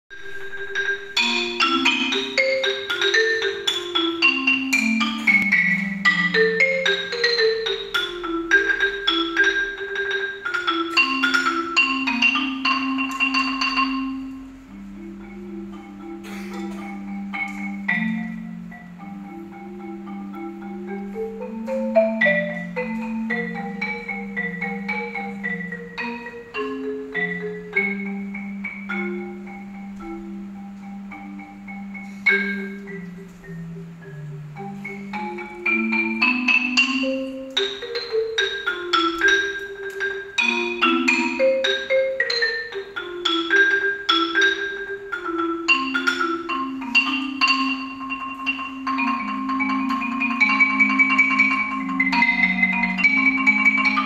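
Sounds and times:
marimba melody: 0.1s - 54.0s.

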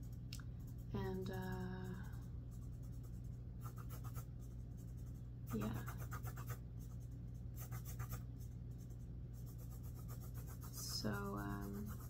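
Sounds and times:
low electrical hum: 0.0s - 12.0s
pen scratching on paper: 2.5s - 6.6s, 7.6s - 8.2s, 9.4s - 12.0s.

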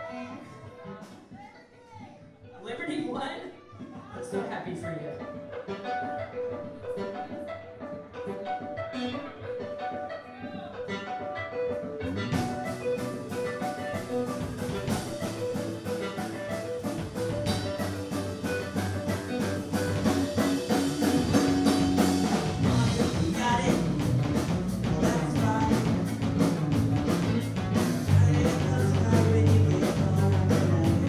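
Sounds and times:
drum kit: 5.2s - 31.0s
electric guitar melodic line: 5.2s - 31.0s
bass guitar: 8.1s - 31.0s.

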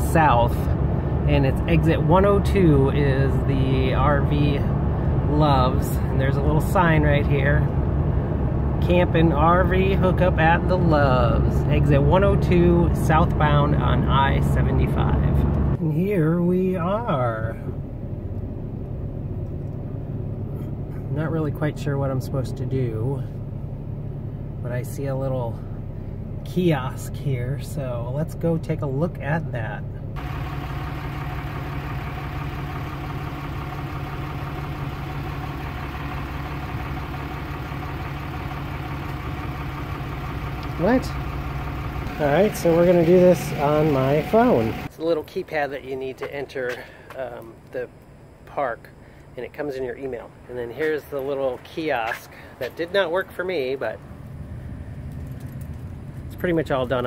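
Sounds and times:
vehicle engine idling: 0.0s - 57.0s.

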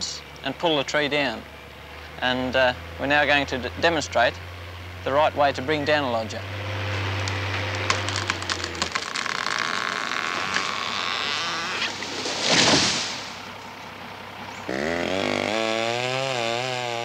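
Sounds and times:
skidder engine hum: 0.0s - 17.0s
engine starting and running: 6.4s - 16.2s
wood cracking and splintering: 7.2s - 13.4s
tree crashing to the ground: 7.5s - 13.5s.

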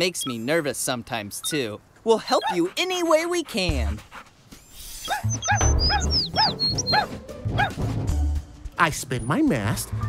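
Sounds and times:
cartoon dog yippy barks: 2.3s - 2.7s, 5.0s - 7.8s
background music with low beat: 5.2s - 10.0s.

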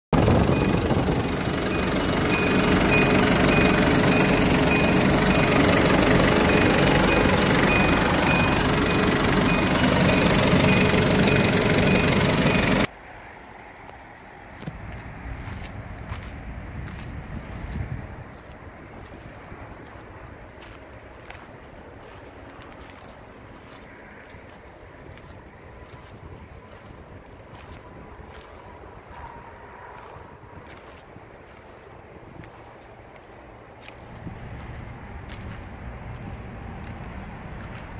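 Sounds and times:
wind buffeting microphone: 0.1s - 3.1s, 14.6s - 22.2s, 22.8s - 37.9s
van engine clattering: 0.1s - 12.9s
wind on microphone: 0.2s - 1.4s, 14.6s - 19.7s
high-pitched engine tick: 0.2s - 12.9s.

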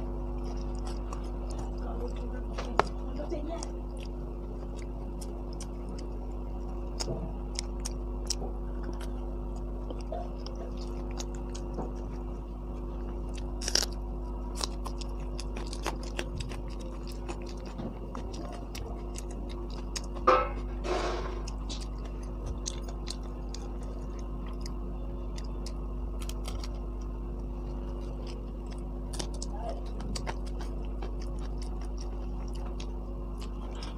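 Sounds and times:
chewing crisp pastry: 0.0s - 33.9s
steady low hum: 0.0s - 33.9s.

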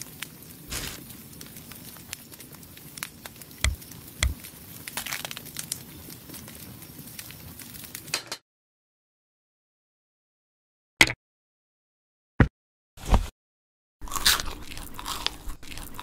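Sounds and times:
crackly food handling: 0.0s - 8.1s, 14.0s - 16.0s.

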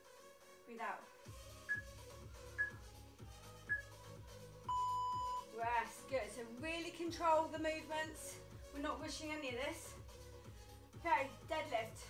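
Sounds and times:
background music with steady beat: 0.0s - 12.0s
timer beeps: 2.6s - 2.8s, 4.7s - 5.5s.

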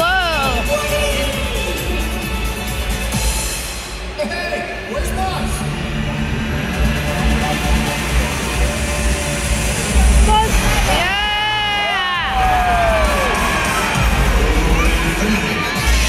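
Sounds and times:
arena crowd noise: 0.0s - 16.0s
loud show music: 0.0s - 16.0s.

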